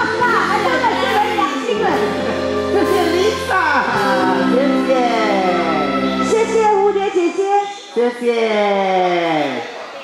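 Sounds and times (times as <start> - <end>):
live band holding chords: 0.0 - 7.0.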